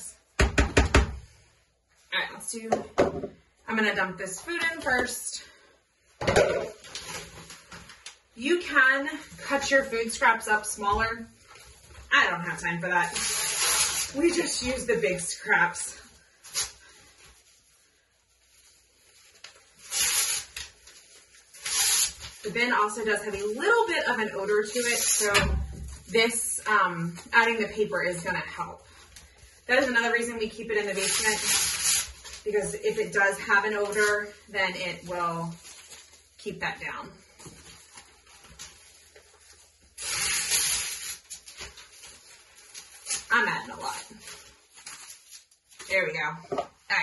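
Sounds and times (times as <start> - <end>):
newspaper tearing by hand: 13.0 - 14.6, 16.2 - 17.4, 19.4 - 23.7, 30.7 - 32.8, 39.5 - 45.9
paper rustling: 16.2 - 26.4, 28.4 - 46.8.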